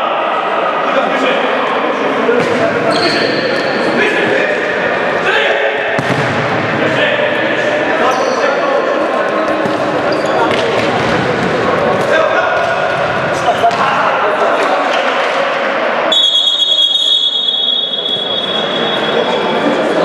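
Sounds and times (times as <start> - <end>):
ball kicks and bounces: 6.0 - 6.4.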